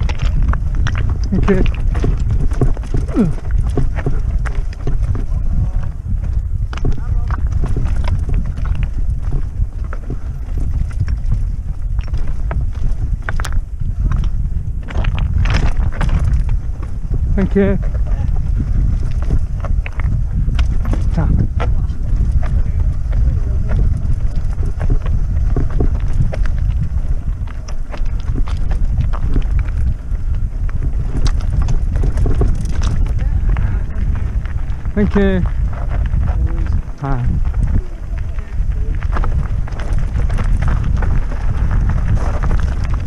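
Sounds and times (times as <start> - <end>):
bike rattling: 0.0 - 43.0
tyres knocking over rocks: 0.0 - 43.0
wind rumbling over microphone: 0.0 - 43.0.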